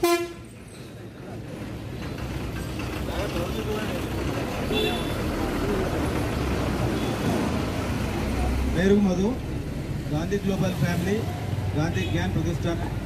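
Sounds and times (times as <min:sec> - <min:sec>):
road vehicles rumbling past: 0:00.0 - 0:13.0.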